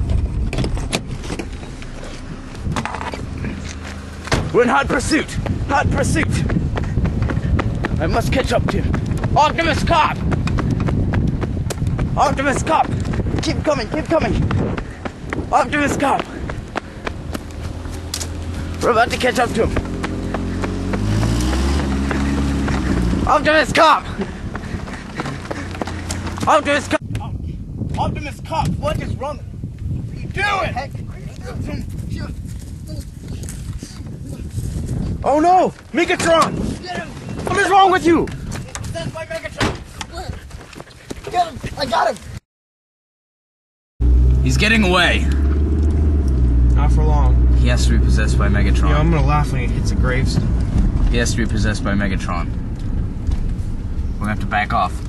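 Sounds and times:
running footsteps: 0.0 - 27.0, 31.3 - 42.4
car engine and road noise: 0.0 - 40.2, 44.0 - 55.0
outdoor background noise: 0.0 - 42.4, 44.0 - 55.0.

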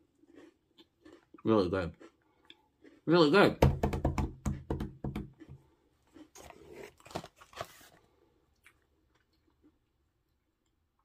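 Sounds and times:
crunchy chewing of biscuit: 0.0 - 3.4, 5.0 - 11.0
packaging rustling: 6.4 - 8.1.

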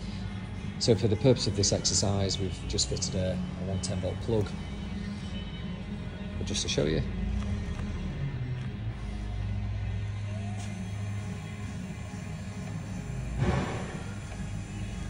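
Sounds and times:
electric motor humming: 10.6 - 15.0.

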